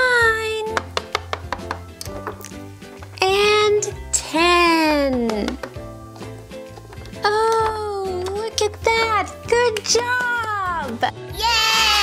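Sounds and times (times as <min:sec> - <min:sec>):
soft background music: 0:00.0 - 0:12.0
toy figure tapping on tabletop: 0:00.7 - 0:02.4, 0:05.2 - 0:05.8.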